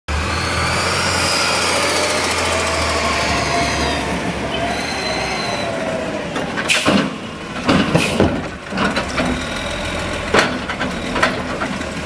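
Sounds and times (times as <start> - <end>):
garbage truck engine humming: 0.1 - 12.0
brake squeal: 0.2 - 7.1, 10.8 - 11.4.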